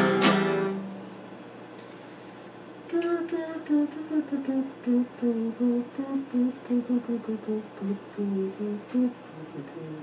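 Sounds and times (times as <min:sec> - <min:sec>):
man humming a tune: 0:02.9 - 0:10.0.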